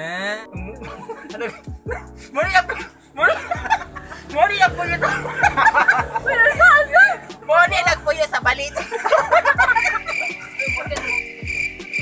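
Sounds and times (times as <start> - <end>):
electronic kick-drum beat: 1.6 - 2.7, 3.6 - 8.8, 9.5 - 12.0
high pulsing chirp-like tone: 3.4 - 12.0.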